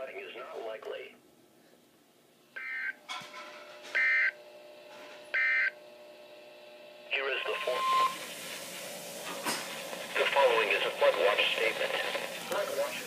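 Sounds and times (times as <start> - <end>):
two-tone warbling data bursts: 7.2 - 8.3.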